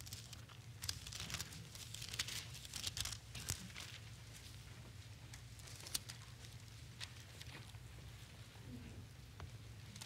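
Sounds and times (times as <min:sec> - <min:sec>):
thin pages turning: 0:00.0 - 0:04.2, 0:05.5 - 0:07.7
low room hum: 0:00.0 - 0:10.0.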